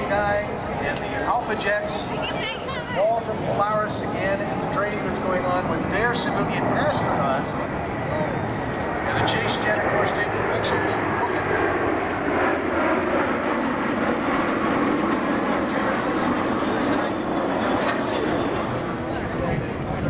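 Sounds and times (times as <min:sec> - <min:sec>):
jet engines flying past: 0:00.0 - 0:20.0.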